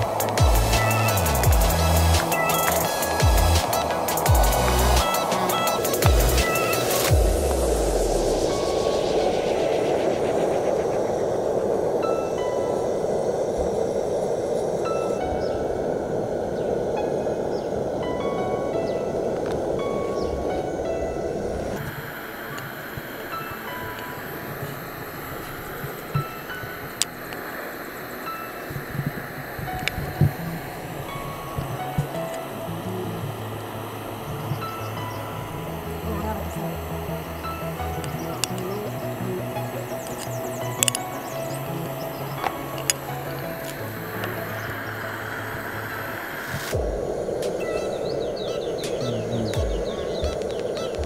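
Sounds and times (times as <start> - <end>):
sharp clicks: 0.0 - 7.7, 37.1 - 44.6
background music with chimes: 0.0 - 51.0.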